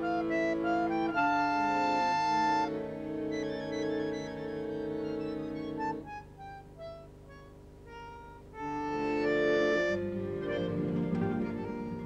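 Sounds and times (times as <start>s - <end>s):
bandoneon playing: 0.0s - 12.0s.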